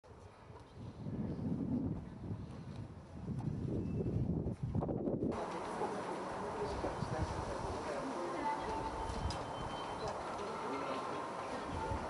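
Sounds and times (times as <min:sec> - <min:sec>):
wind buffeting microphone: 0:00.1 - 0:10.2, 0:11.5 - 0:12.0.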